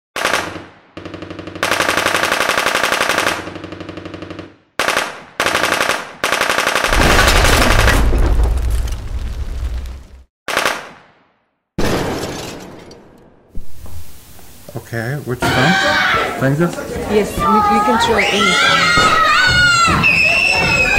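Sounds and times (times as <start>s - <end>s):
automatic gunfire bursts: 0.2s - 7.8s, 10.5s - 10.9s
deep explosion rumble: 6.9s - 10.2s
explosion blasts: 6.9s - 10.3s.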